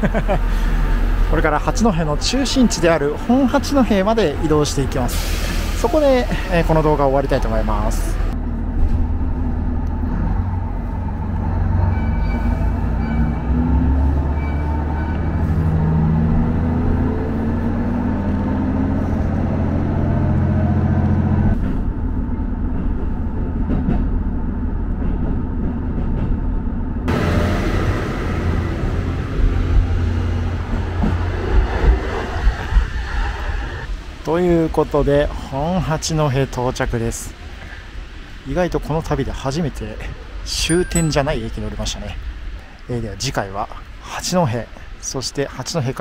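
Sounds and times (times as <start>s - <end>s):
diesel railcar engine: 0.0s - 45.1s.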